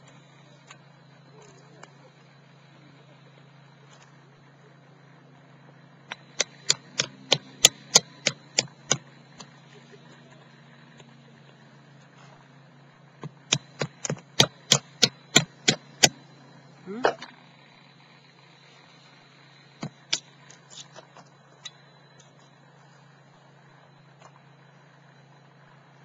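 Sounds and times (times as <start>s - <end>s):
firewood being chopped: 6.1s - 9.6s, 13.2s - 16.2s, 19.8s - 21.0s.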